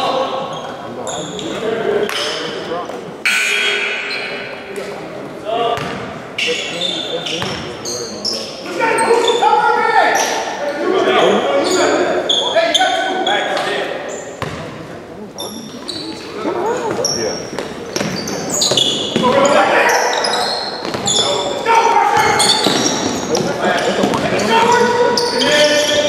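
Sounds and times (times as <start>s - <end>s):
sneakers squeaking: 0.3s - 9.4s, 10.0s - 26.0s
basketball bouncing on hardwood: 20.8s - 21.1s
people shouting: 21.3s - 22.8s.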